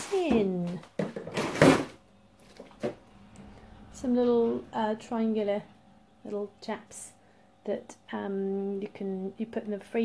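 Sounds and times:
grocery items rustling and scraping: 0:00.0 - 0:03.0.

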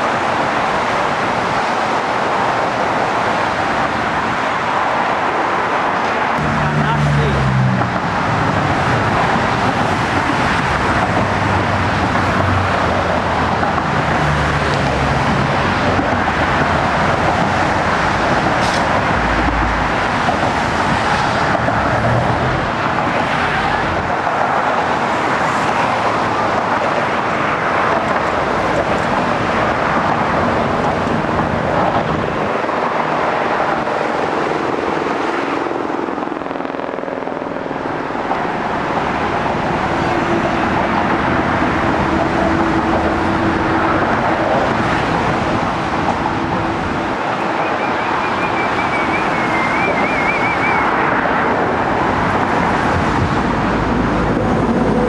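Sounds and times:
road and traffic noise: 0:00.0 - 0:55.0.

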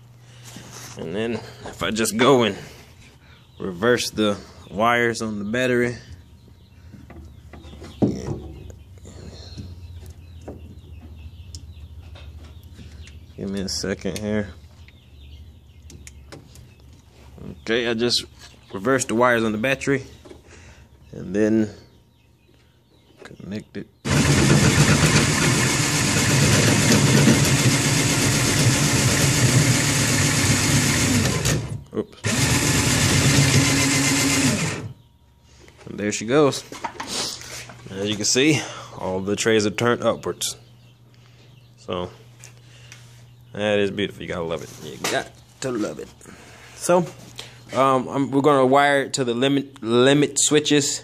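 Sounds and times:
steady low hum: 0:00.0 - 0:51.0
cordless drill motor running: 0:24.1 - 0:35.0.

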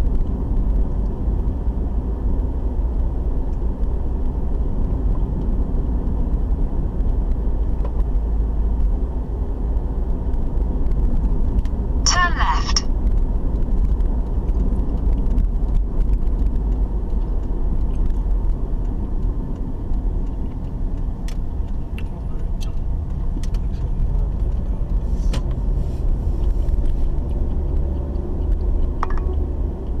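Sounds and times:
car engine and road noise: 0:00.0 - 0:30.0.

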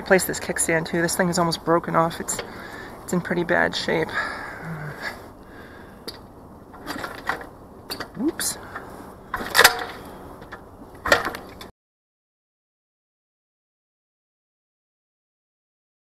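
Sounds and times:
motorbike kickstarter clunks: 0:06.0 - 0:11.7.

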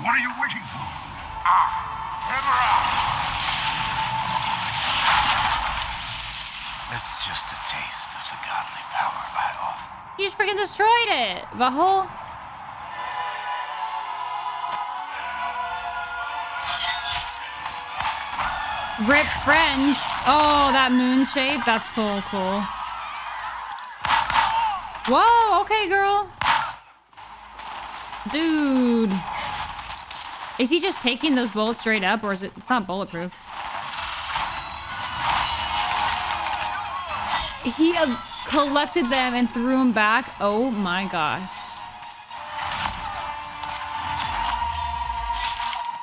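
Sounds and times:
burst of noise: 0:00.0 - 0:10.2, 0:33.3 - 0:39.3
dramatic action score: 0:00.0 - 0:46.0.

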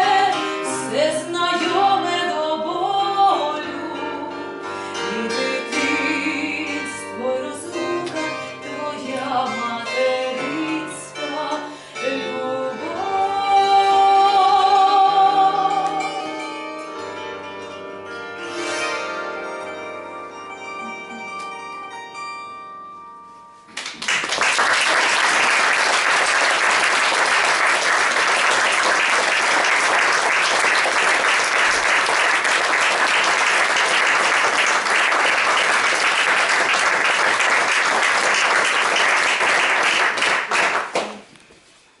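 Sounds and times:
bandura chord ringing: 0:15.4 - 0:23.6
audience applauding: 0:23.7 - 0:41.3.

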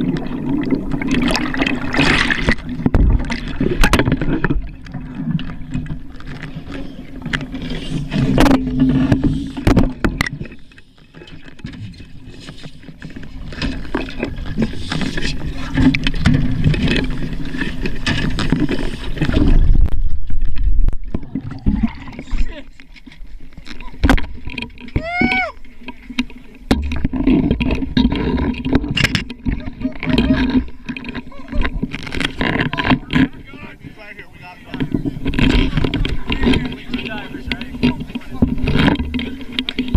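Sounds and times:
low wavering underwater hum: 0:00.0 - 0:39.9
high-pitched shout: 0:25.0 - 0:25.6
people's voices: 0:29.6 - 0:38.7.

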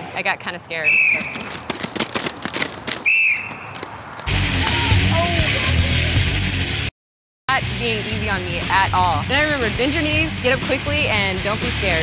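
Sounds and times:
roller skates clattering on rink: 0:01.1 - 0:04.3
short whistle blast: 0:03.1 - 0:03.6.

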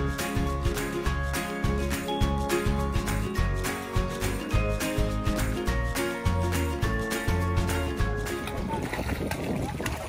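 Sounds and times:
background music: 0:00.0 - 0:08.9
water splashing: 0:02.6 - 0:10.0
wind on microphone: 0:08.4 - 0:10.0.

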